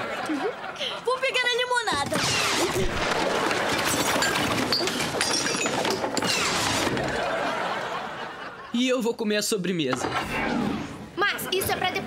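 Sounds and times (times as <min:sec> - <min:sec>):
tableware clattering: 0:03.2 - 0:07.6.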